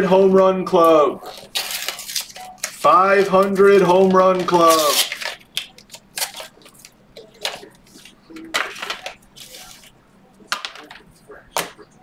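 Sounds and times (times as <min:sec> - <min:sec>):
card pack rustling: 0:01.2 - 0:09.9.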